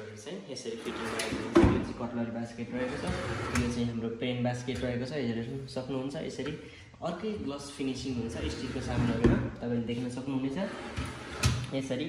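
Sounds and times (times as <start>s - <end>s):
drawer sliding on runners: 0.8s - 2.0s, 2.7s - 3.9s, 8.2s - 9.5s, 10.6s - 11.7s
drawer shutting with a bang: 1.0s - 2.0s.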